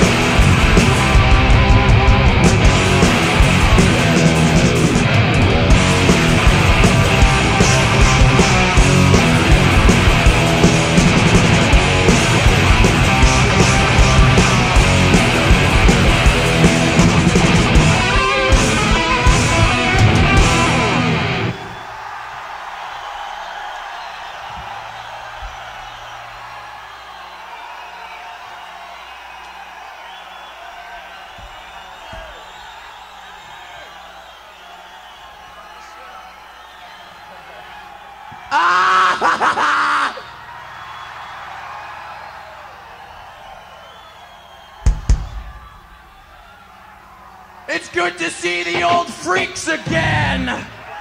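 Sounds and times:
crowd cheering and yelling: 0:00.0 - 0:51.0
loud yell: 0:00.0 - 0:51.0.

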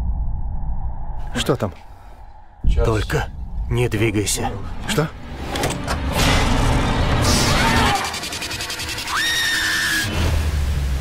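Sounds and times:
deep low rumble: 0:00.0 - 0:05.2
high rising shriek: 0:07.2 - 0:10.3.

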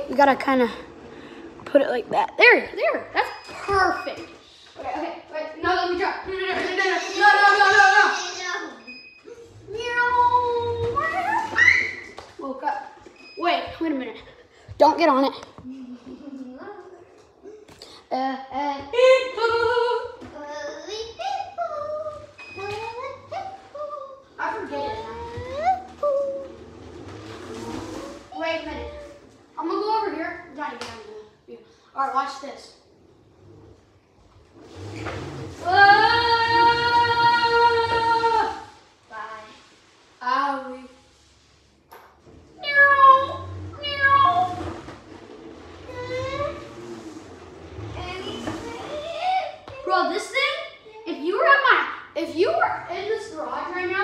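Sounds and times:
children's vocal sounds: 0:06.6 - 0:12.2, 0:15.0 - 0:30.3, 0:34.6 - 0:38.9, 0:42.5 - 0:51.4
child squealing: 0:09.3 - 0:12.1.

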